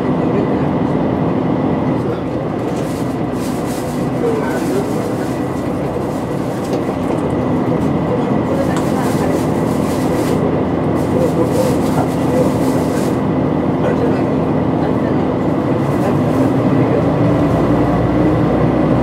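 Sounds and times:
diesel railcar engine running: 0:00.0 - 0:19.0.

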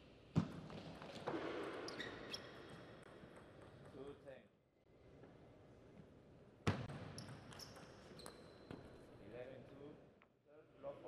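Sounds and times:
shoes squeaking on floor: 0:01.9 - 0:02.7.

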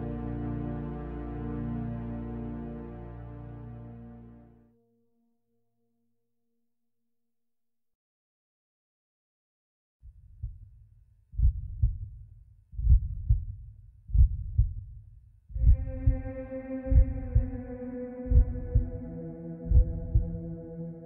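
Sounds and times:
sustained musical tones: 0:00.0 - 0:04.7, 0:15.7 - 0:21.0
heartbeat thuds: 0:10.4 - 0:10.7, 0:11.3 - 0:17.6, 0:18.2 - 0:20.6.

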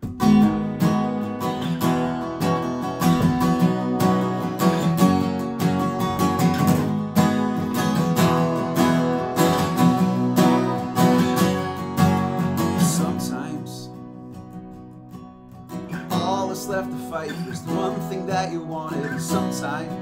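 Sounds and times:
acoustic guitars strumming: 0:00.0 - 0:20.0.

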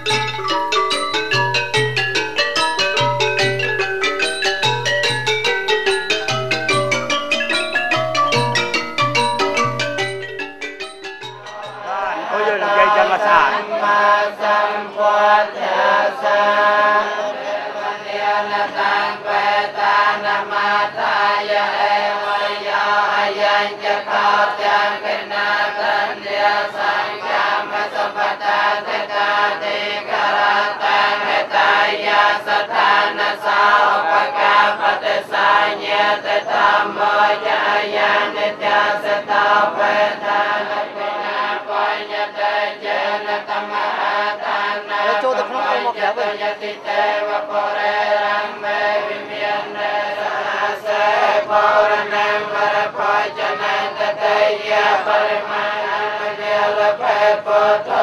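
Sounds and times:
men chanting in unison: 0:11.8 - 0:58.0.

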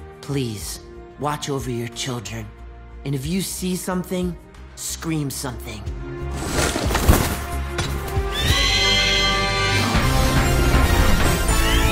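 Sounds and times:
background music: 0:00.0 - 0:11.9
cartoon bird of prey screech: 0:08.3 - 0:10.0.

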